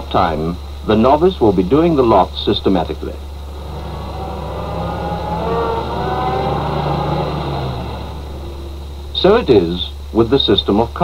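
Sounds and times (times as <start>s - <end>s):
car engine running: 2.8s - 10.4s.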